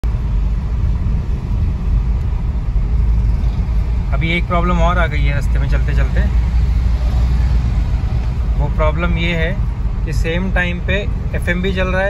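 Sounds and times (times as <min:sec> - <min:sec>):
road and engine rumble in car: 0:00.0 - 0:12.0.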